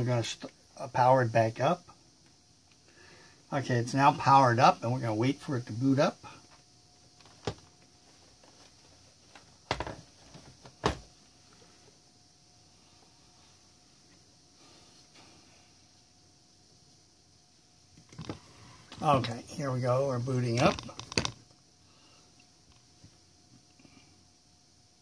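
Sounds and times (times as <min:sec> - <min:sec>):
faint steady hiss: 0:00.0 - 0:25.0.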